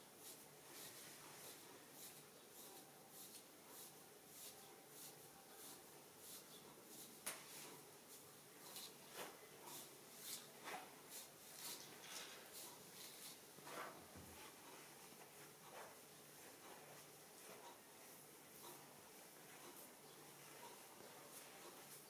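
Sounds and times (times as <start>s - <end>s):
comb scratching through hair: 0.2s - 18.8s.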